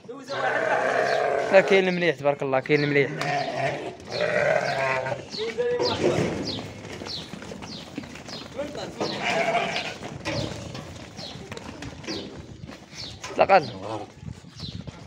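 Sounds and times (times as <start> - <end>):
rams bleating: 0.2 - 2.0, 2.8 - 6.0, 8.9 - 10.8.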